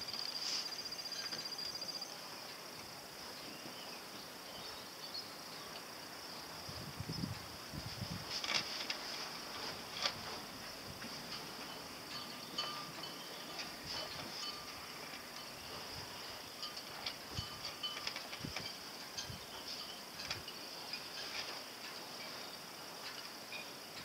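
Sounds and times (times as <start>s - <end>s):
rigging tinkling against masts: 0.0s - 2.6s, 9.8s - 24.0s
steady high hiss: 0.0s - 24.0s.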